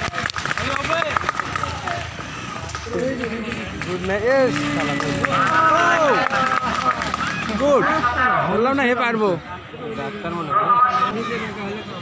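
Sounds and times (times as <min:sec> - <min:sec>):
outdoor background noise: 0:00.0 - 0:12.0
people talking and calling out: 0:00.0 - 0:12.0.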